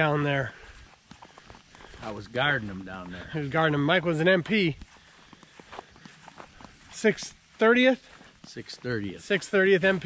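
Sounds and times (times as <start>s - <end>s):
footsteps on grass: 0.0s - 10.0s.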